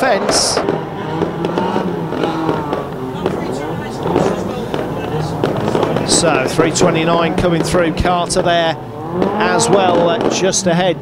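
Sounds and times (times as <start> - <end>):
race car engines droning: 0.0 - 11.0
cars crashing together: 0.1 - 11.0.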